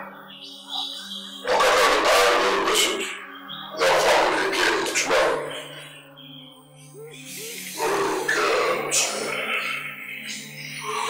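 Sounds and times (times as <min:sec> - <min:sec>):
soft background music: 0:00.0 - 0:11.0
animal-like cries: 0:06.8 - 0:10.2.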